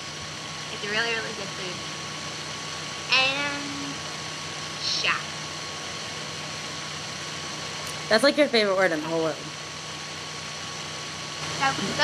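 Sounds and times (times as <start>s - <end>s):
faint hum: 0.0s - 12.0s
woman speaking: 0.7s - 1.8s, 4.8s - 5.3s, 11.6s - 12.0s.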